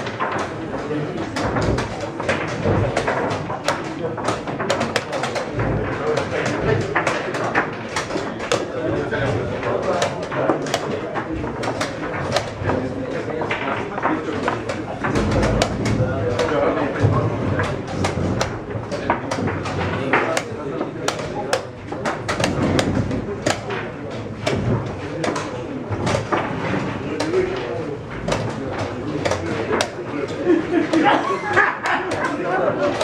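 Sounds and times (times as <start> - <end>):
chess pieces clicking on board: 0.0 - 33.0.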